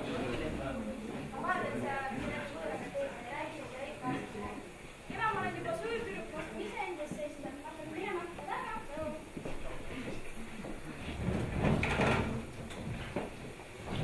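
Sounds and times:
voices speaking in a hall: 0.0s - 12.6s.

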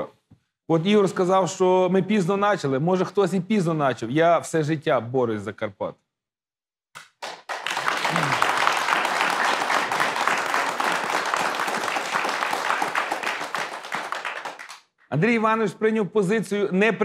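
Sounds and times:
audience applauding: 7.0s - 14.8s.

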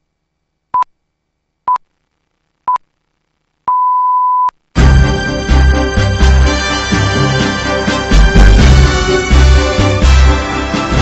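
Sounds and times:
high pure tone beep: 3.7s - 4.6s
loud music: 4.8s - 11.0s.

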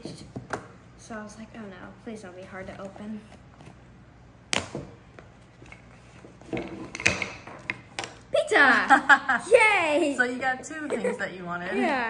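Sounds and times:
wooden pieces clicking on table: 6.5s - 8.2s.

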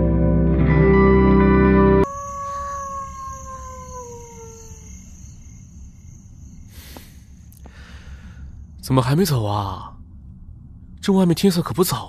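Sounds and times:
howl-like tone sliding down: 2.0s - 6.9s.

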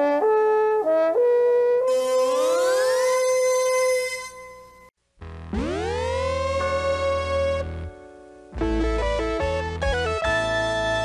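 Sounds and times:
tv ident music with sliding notes: 1.9s - 7.7s.

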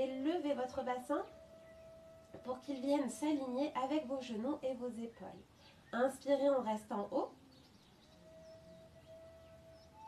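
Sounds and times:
faint steady tone: 0.0s - 10.0s
faint high bird chirps: 0.7s - 6.5s, 7.3s - 10.0s.

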